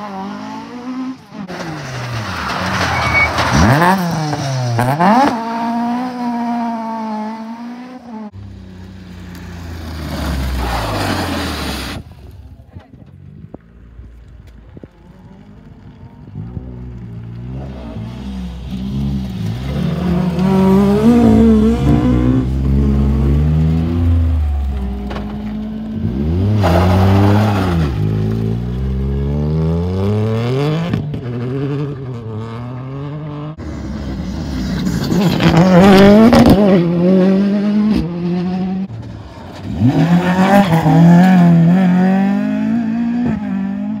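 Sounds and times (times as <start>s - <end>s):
rally car engine revving: 16.3s - 44.0s.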